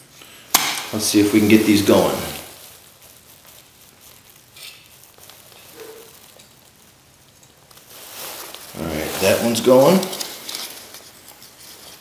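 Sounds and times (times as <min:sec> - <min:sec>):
stove flame catching rush: 0:00.0 - 0:12.0.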